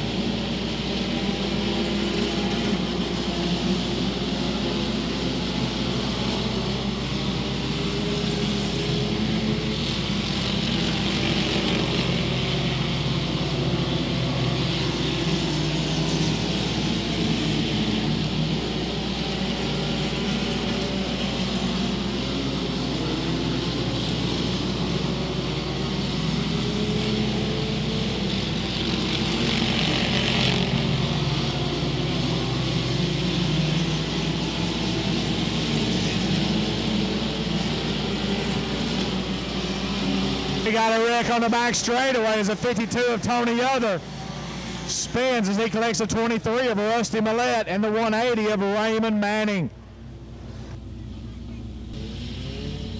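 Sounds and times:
race car engines passing: 0.0s - 52.9s.

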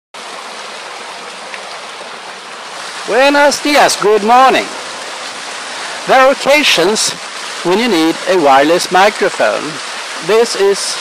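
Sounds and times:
waterfall splashing into a pool: 0.2s - 11.0s.

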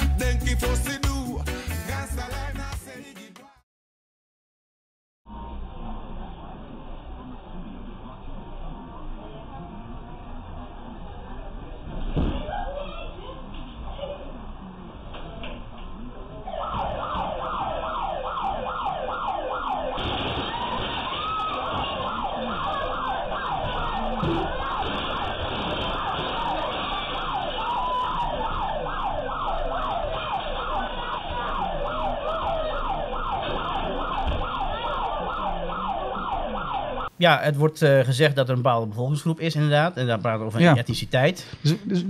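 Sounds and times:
electronic alarm siren sweeping: 16.4s - 37.1s.

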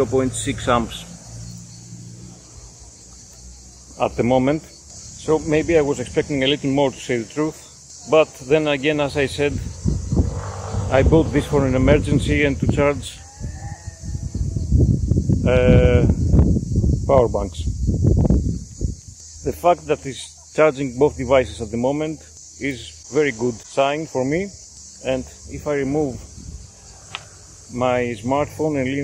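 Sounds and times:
high-pitched insect chirring: 0.0s - 29.0s
wind rumble on microphone: 9.4s - 19.2s, 25.7s - 27.4s
low rumble: 9.6s - 12.8s.

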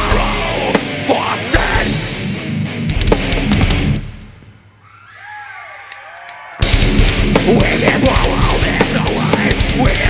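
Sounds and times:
metal band playing: 0.0s - 4.4s, 6.0s - 10.0s.

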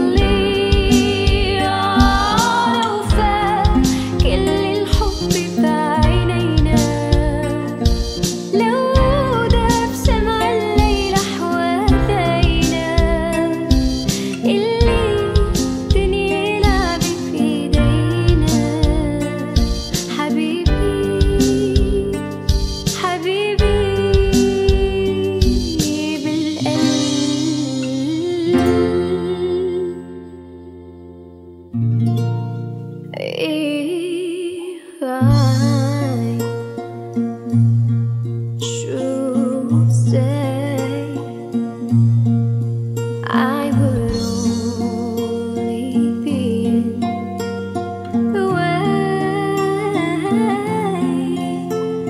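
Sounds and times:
woman singing a ballad: 0.0s - 30.8s, 33.2s - 37.9s, 38.6s - 42.2s, 43.1s - 52.0s
instrumental accompaniment: 0.0s - 33.2s.

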